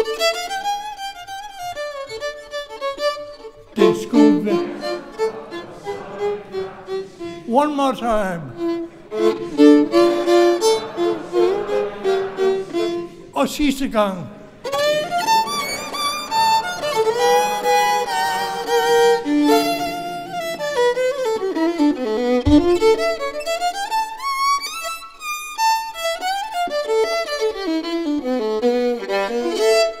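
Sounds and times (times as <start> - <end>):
violin melody with vibrato: 0.0 - 13.2, 14.6 - 30.0.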